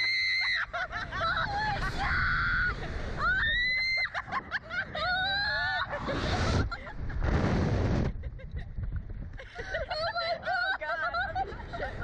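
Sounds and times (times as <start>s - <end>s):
young women screaming: 0.0s - 4.3s, 4.9s - 5.9s.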